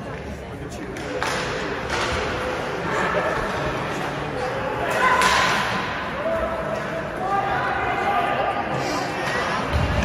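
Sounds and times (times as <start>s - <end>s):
ice hockey game noise: 0.0s - 10.0s
hockey stick or puck crack: 1.0s - 2.4s, 5.2s - 5.8s.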